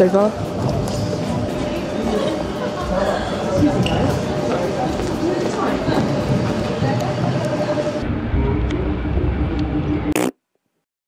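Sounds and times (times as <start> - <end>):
indistinct voices: 0.0 - 10.2.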